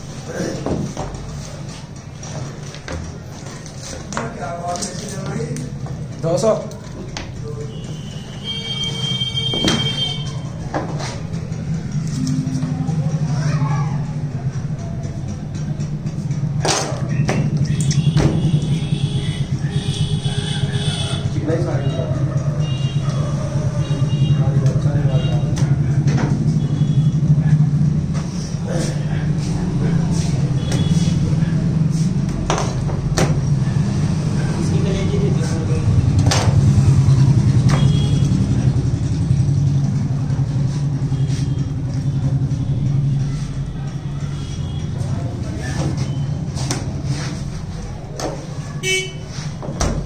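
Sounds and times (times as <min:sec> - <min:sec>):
steady low hum: 0:00.0 - 0:49.6.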